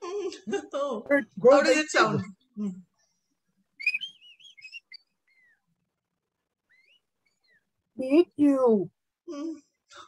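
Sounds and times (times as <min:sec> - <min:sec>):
man whistling bird call: 0:03.8 - 0:05.5.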